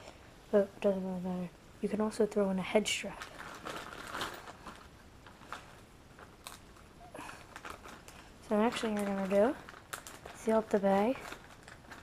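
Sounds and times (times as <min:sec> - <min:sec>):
plastic bag crinkling: 0:02.8 - 0:12.0.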